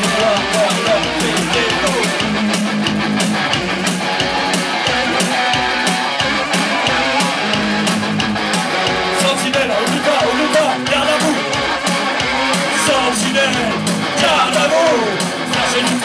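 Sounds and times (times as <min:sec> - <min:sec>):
electric guitar strumming: 0:00.0 - 0:16.0
fast drum machine beat: 0:00.0 - 0:16.0
synthesizer: 0:00.0 - 0:16.0.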